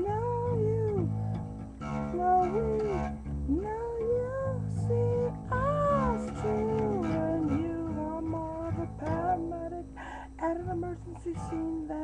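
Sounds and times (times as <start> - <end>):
guitar chord ringing: 0.0 - 12.0.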